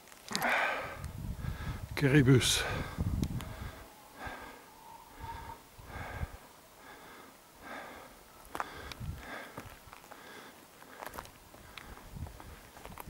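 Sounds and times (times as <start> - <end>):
person breathing close: 0.3 - 1.9, 2.5 - 12.6.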